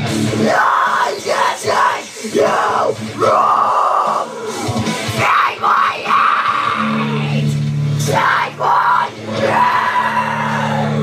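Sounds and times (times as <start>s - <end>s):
metalcore backing track: 0.0s - 11.0s.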